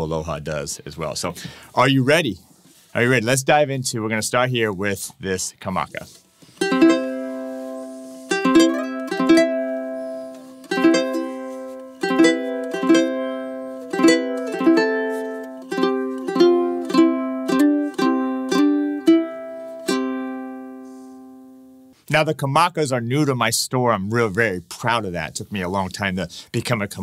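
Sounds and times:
ukulele strumming chords: 6.5 - 21.6.

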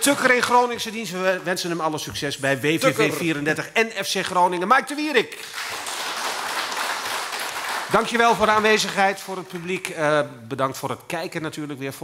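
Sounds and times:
audience applauding: 5.4 - 10.0.

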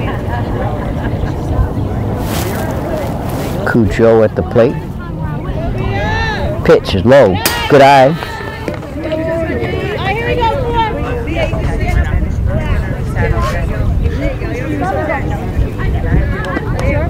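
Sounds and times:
people calling out and chattering: 0.0 - 17.0
wind rumble on microphone: 8.5 - 17.0.

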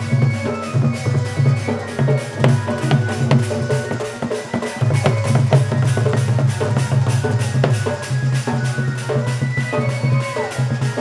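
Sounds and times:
barrel drum beaten fast: 0.0 - 11.0
held pitched melody tones: 0.0 - 11.0.

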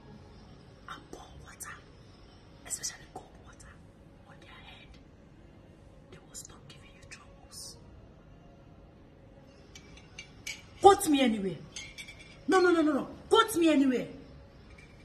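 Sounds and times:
woman whispering: 0.8 - 1.9, 2.6 - 5.1, 6.1 - 7.8.

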